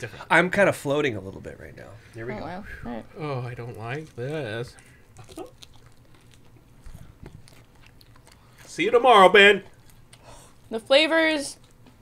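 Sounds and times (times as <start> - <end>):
person chewing: 3.2 - 10.7.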